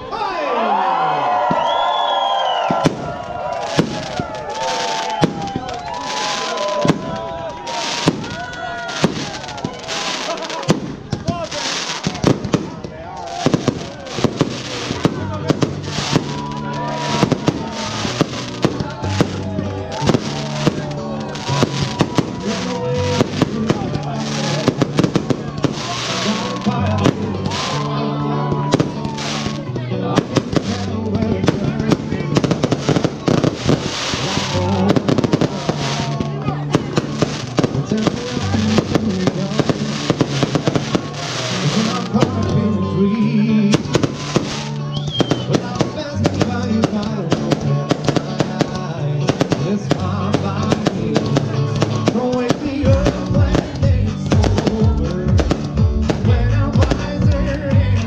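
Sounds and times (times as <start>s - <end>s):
fireworks bursts and crackle: 1.3s - 58.0s
loud music with bass line: 13.4s - 58.0s.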